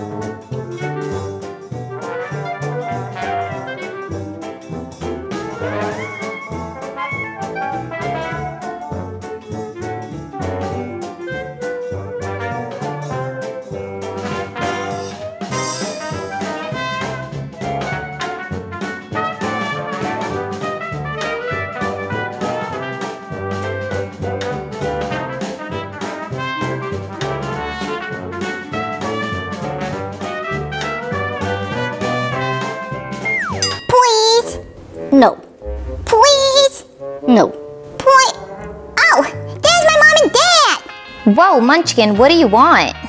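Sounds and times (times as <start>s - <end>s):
upbeat jazzy brass music: 0.1s - 33.4s, 39.5s - 43.0s.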